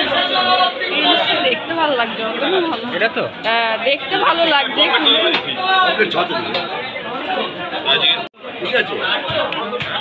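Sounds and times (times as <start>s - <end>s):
overlapping chatter: 0.0s - 10.0s.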